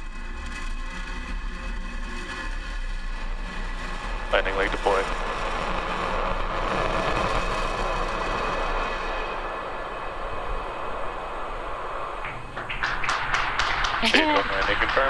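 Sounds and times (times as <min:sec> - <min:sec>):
rocket engine roar: 0:00.0 - 0:15.0
crowd clapping and cheering: 0:12.2 - 0:15.0.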